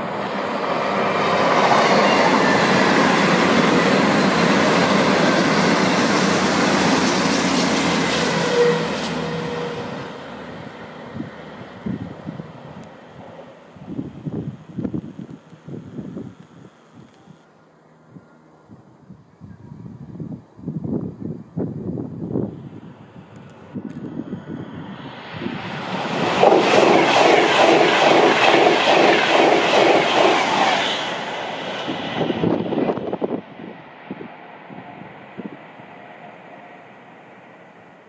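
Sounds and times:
passenger train passing: 0.0s - 14.8s, 21.5s - 38.0s.

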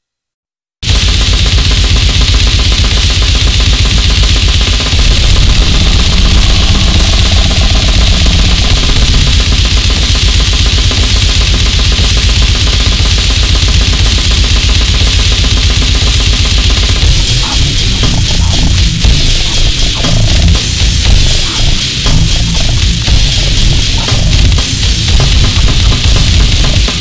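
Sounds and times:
distorted noise: 0.8s - 27.0s
rapid drumming: 0.8s - 27.0s.

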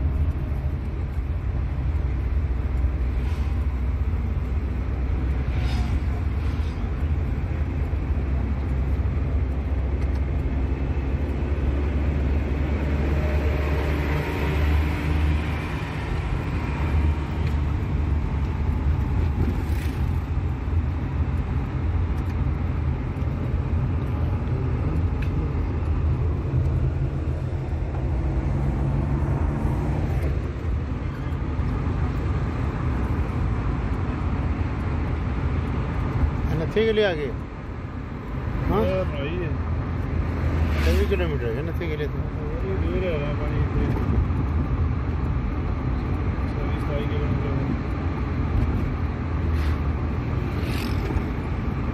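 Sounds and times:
vehicle engine and road rumble: 0.0s - 51.9s.

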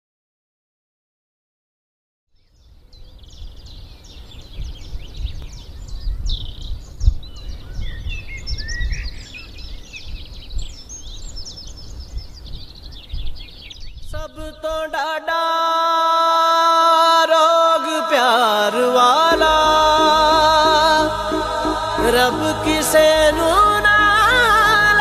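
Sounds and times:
small birds chirping: 2.3s - 14.8s.

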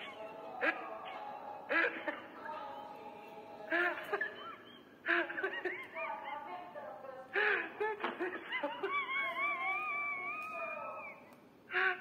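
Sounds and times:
high wavering wail through phone speaker: 8.8s - 12.0s.

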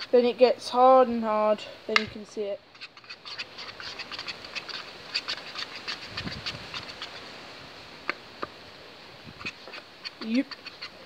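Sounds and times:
spoon stirring slime: 2.7s - 7.2s, 9.4s - 11.0s.

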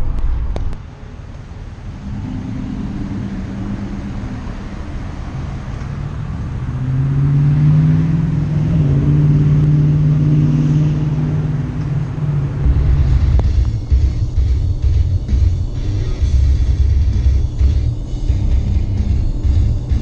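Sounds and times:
low rumble: 0.0s - 7.5s, 8.2s - 20.0s
vehicle engine running: 0.0s - 20.0s.

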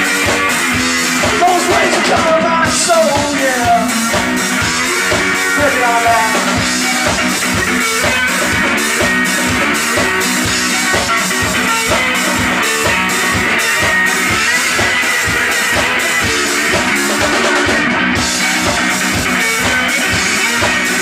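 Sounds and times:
drum kit beat: 0.0s - 21.0s.

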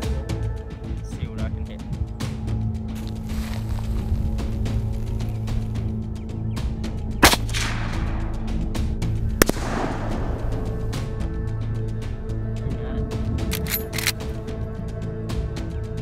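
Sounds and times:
background music with beat: 0.0s - 16.0s
rifle shots with echo: 7.2s - 11.1s.

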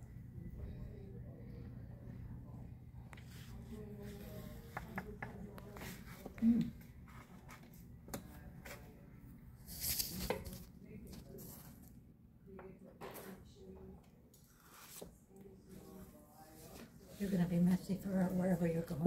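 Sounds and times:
faint indistinct voices: 0.0s - 19.0s.

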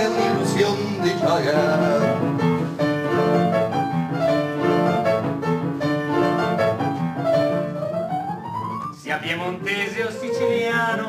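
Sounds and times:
lively piano playing: 0.0s - 11.0s.

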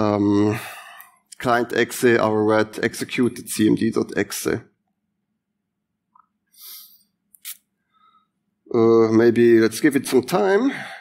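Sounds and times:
short hiss: 6.6s - 7.7s
mouth click: 7.3s - 7.7s
man breathing softly: 7.8s - 8.4s.

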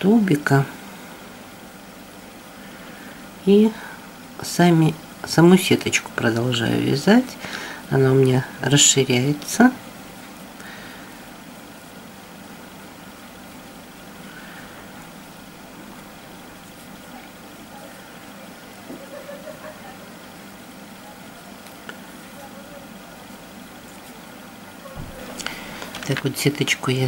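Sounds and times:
low hum and hiss: 0.0s - 27.0s.

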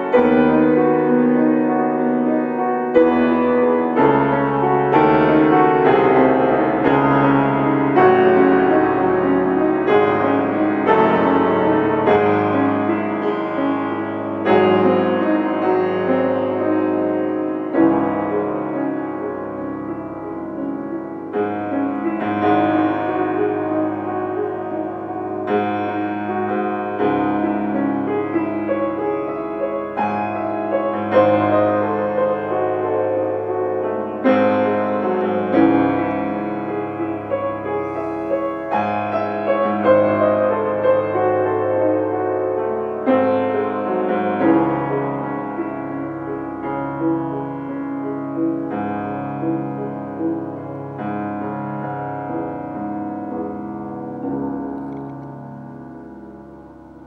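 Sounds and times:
grand piano chords: 0.0s - 57.0s.

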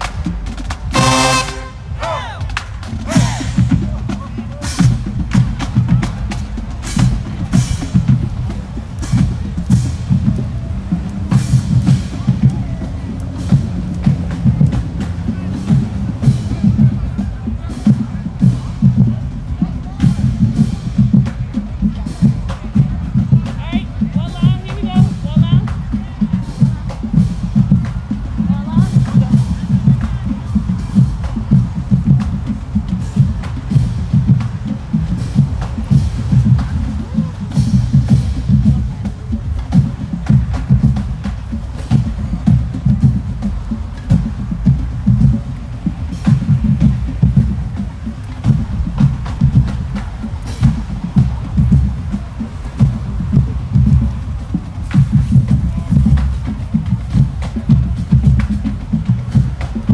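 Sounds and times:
brass chord: 0.9s - 2.2s.

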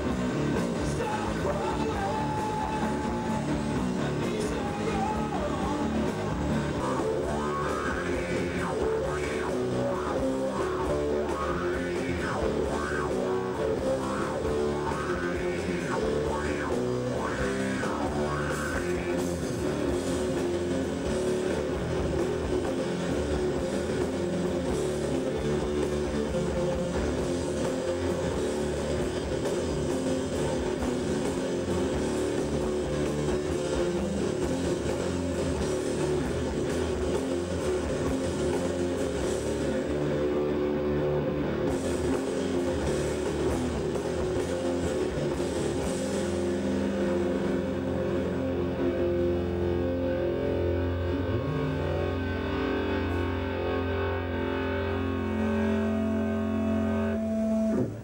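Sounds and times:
distorted electric guitars: 0.0s - 58.0s
drum kit: 0.0s - 58.0s
rock band playing live: 0.0s - 58.0s.

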